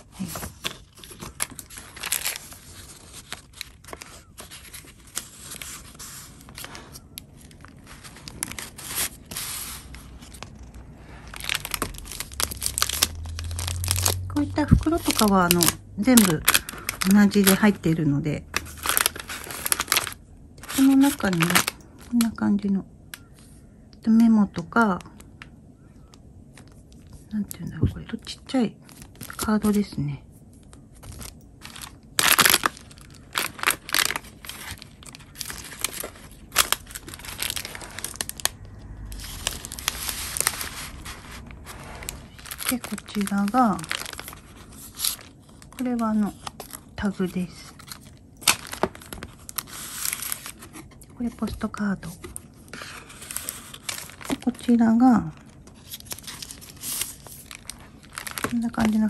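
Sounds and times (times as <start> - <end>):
paper pages rustling and crinkling: 0.0 - 22.4, 28.8 - 59.0.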